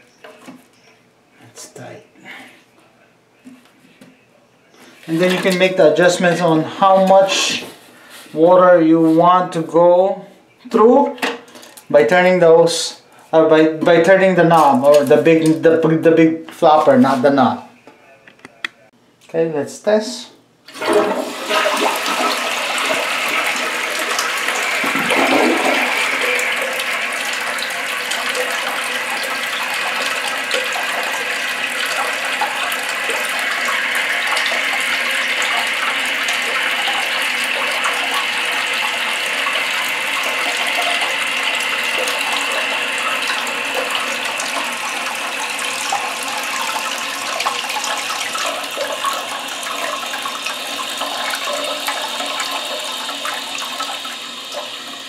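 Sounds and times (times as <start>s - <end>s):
toilet bowl draining: 5.1s - 7.6s, 20.7s - 55.0s
toilet tank refilling hiss: 20.7s - 55.0s.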